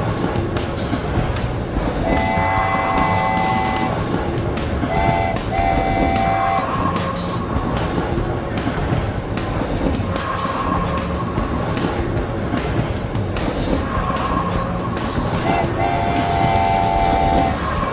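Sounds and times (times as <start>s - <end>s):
train running noise: 0.0s - 17.9s
steam locomotive whistle: 2.0s - 4.0s, 4.9s - 7.0s, 15.4s - 17.9s.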